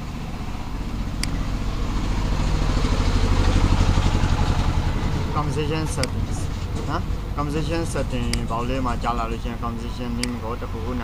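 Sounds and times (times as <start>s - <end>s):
motor engine running: 0.0s - 11.0s.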